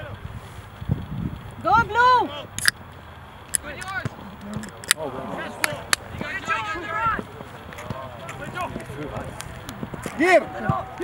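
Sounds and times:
short sharp clicks: 2.6 - 2.8
people shouting: 3.7 - 9.0, 9.9 - 11.0.

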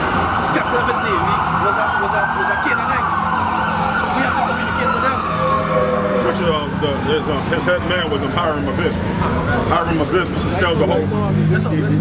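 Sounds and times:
siren wailing: 0.0 - 10.3.

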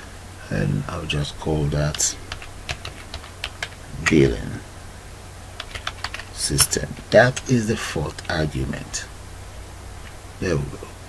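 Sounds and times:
keyboard typing clicks: 5.6 - 6.8.

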